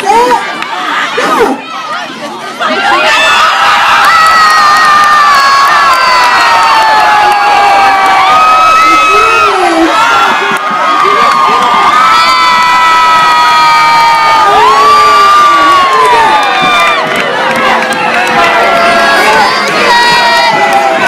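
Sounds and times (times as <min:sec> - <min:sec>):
crowd cheering and screaming: 0:00.0 - 0:21.0.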